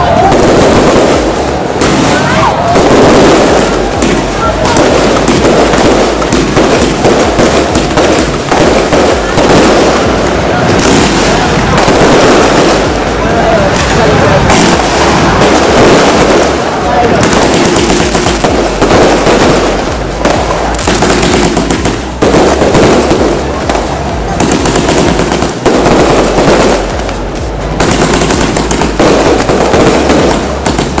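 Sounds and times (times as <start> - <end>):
fireworks bangs and crackles: 0.0 - 31.0.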